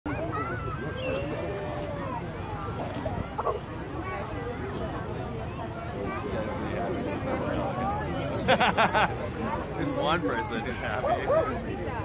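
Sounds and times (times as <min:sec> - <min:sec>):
people talking: 0:00.1 - 0:12.0.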